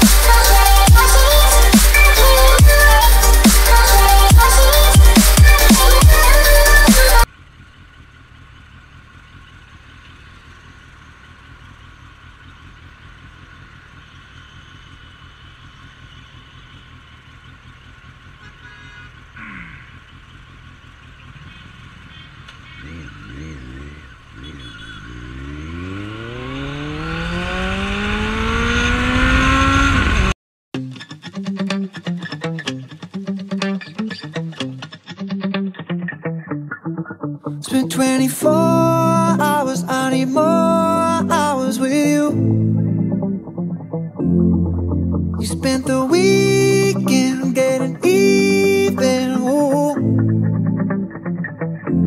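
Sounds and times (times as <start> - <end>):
motorcycle engine revving: 0.0 - 30.4
traffic noise: 6.7 - 30.4.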